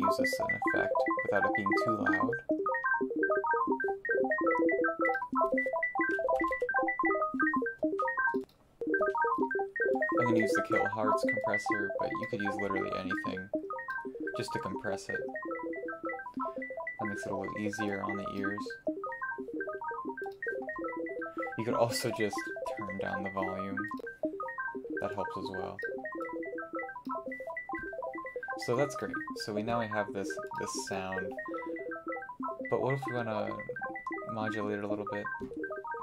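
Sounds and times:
twinkling plucked synth notes: 0.0 - 36.0.

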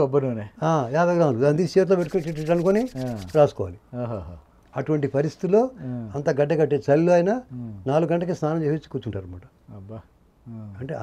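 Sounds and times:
man talking: 0.7 - 11.0
scratchy rubbing noise: 1.7 - 3.6.

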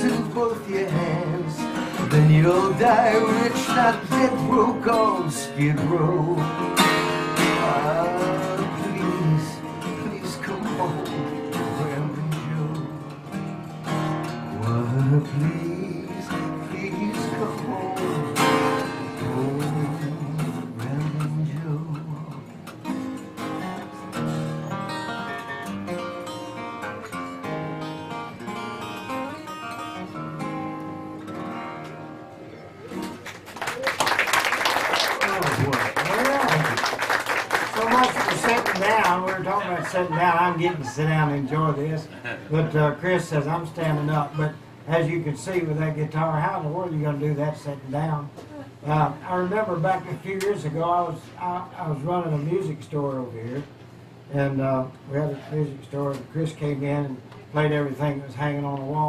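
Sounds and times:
solo acoustic guitar: 0.0 - 33.5, 37.5 - 59.0
audience applause: 32.9 - 40.2.

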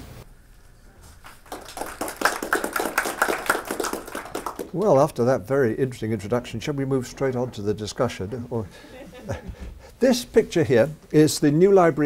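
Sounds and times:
audience applauding: 1.2 - 5.1.

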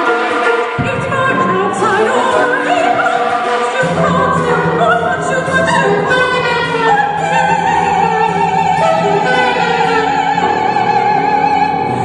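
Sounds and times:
instrumental ensemble: 0.0 - 12.0
person singing with vibrato: 0.0 - 12.0.

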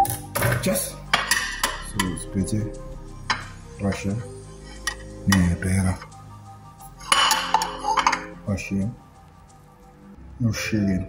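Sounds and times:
faint background music: 0.0 - 11.0
ceramic plates clinking: 0.4 - 2.2, 7.0 - 8.4.

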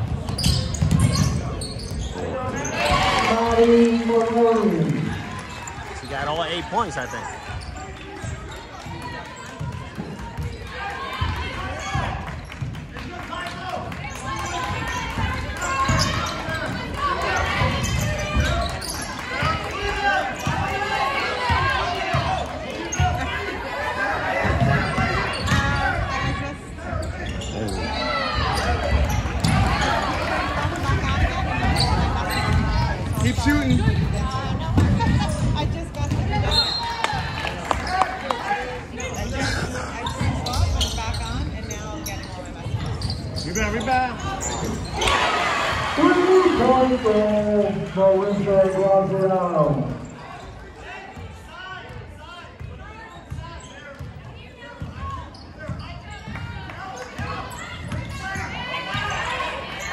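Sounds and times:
chatter and calls of people: 0.0 - 59.9
basketball bouncing on hardwood floor: 34.7 - 36.4.

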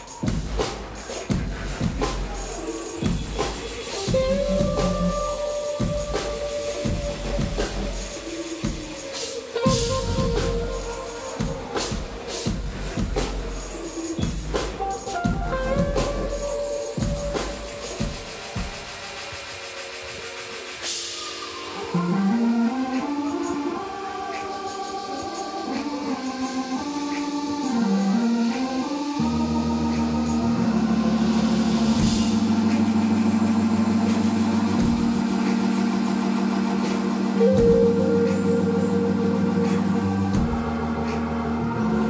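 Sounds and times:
low synth bass notes: 0.0 - 8.3, 9.7 - 17.9, 29.2 - 42.0
light drumming: 0.0 - 19.2, 31.6 - 41.7
keyboards: 0.0 - 42.0
noisy wash with held tones: 0.0 - 42.0
high sustained tone: 29.2 - 42.0.

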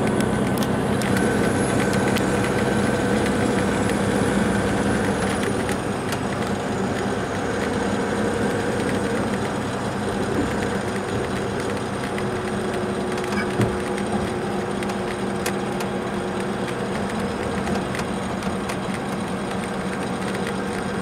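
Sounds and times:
diesel engine drone: 0.0 - 21.0
road and tyre noise: 0.0 - 21.0.

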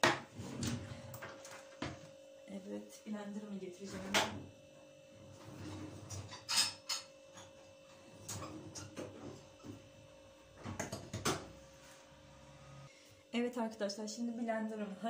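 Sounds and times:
kitchen utensils clattering: 5.6 - 7.6.

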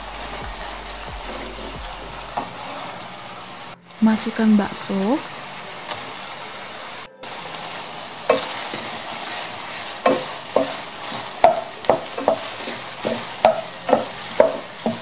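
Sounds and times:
meat sizzling in oil: 2.4 - 15.0
wooden spatula scraping a pan: 7.3 - 15.0.

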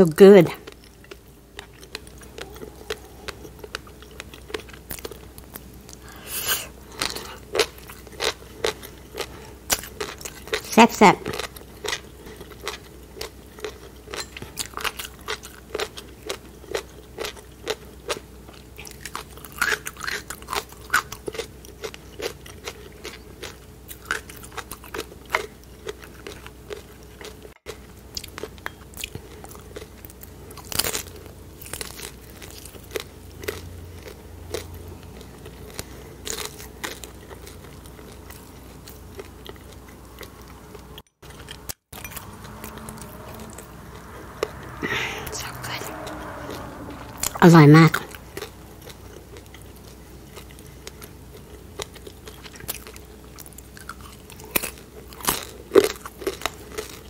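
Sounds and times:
chewing and crunching food: 0.2 - 57.0.

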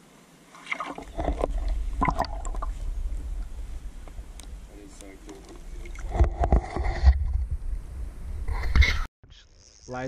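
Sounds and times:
water sloshing and lapping: 0.5 - 7.4
steady low rumble: 1.0 - 8.8.

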